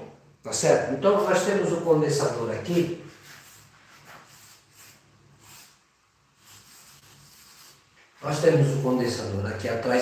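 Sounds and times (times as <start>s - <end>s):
chalk rubbing on chalkboard: 1.2s - 8.8s.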